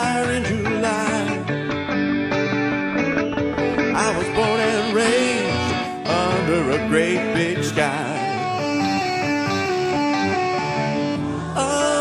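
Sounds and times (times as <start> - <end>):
country backing band: 0.0 - 12.0
guitar melodic run: 0.0 - 12.0.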